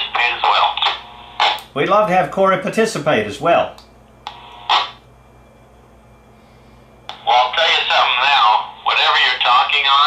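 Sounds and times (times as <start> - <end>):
voice over radio speaker: 0.0 - 1.1, 7.1 - 10.0
radio noise bursts: 4.3 - 5.0.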